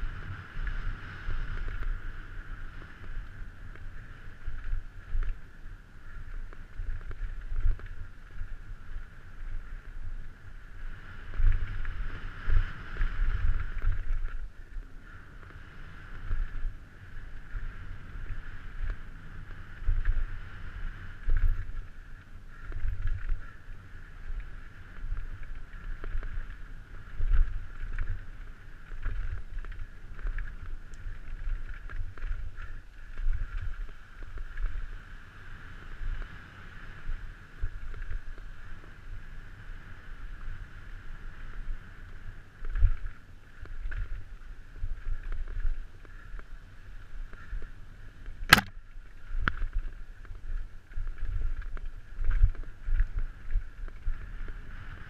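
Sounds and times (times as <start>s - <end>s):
wind buffeting microphone: 0.0s - 55.0s
bike clicks and knocks: 48.5s - 48.8s.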